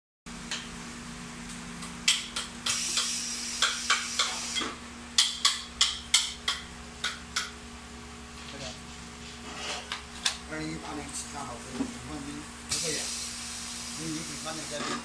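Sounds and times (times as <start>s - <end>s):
steady low hum: 0.3s - 15.0s.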